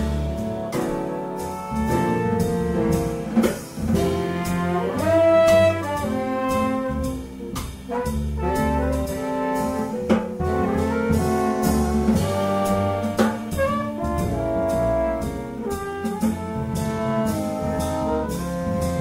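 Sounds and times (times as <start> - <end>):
jazz ensemble horns: 0.0 - 19.0.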